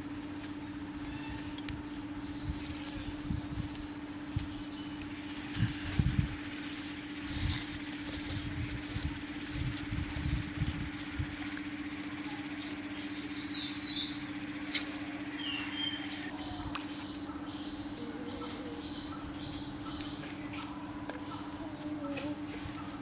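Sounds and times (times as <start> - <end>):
small birds chirping: 0.0 - 23.0
steady hum: 0.0 - 23.0.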